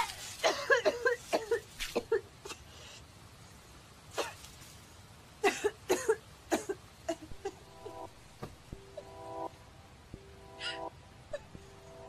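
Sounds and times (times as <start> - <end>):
woman whimpering: 10.6 - 11.6.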